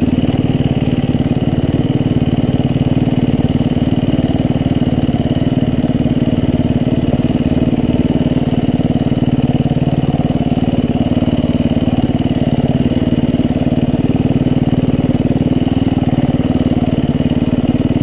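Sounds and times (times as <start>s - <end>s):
dirt bike engine running: 0.0s - 18.0s.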